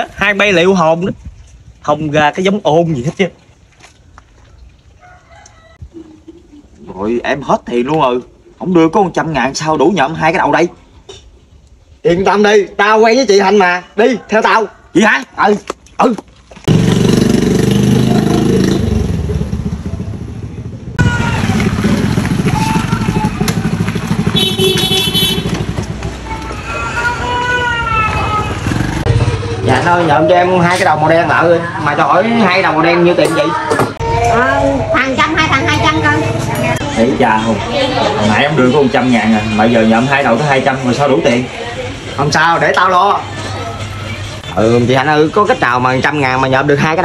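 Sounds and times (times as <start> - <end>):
rooster crowing: 5.0 - 5.8
motorcycle engine running: 16.7 - 26.3, 28.4 - 30.0.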